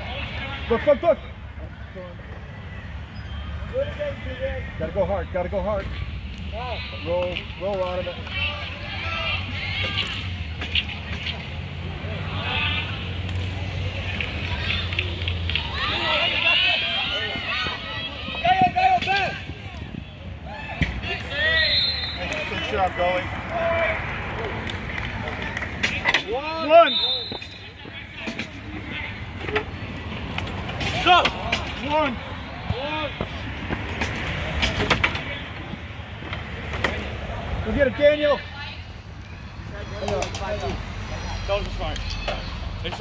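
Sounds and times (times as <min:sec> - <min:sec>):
players and onlookers shouting: 0:05.7 - 0:10.5, 0:12.0 - 0:29.6, 0:30.7 - 0:33.4.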